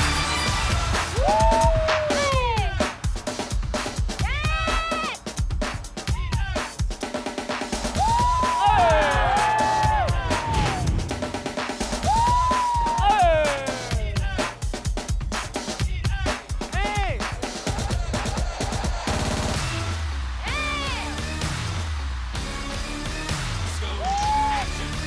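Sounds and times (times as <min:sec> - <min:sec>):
dance music drum beat: 0:00.0 - 0:25.0.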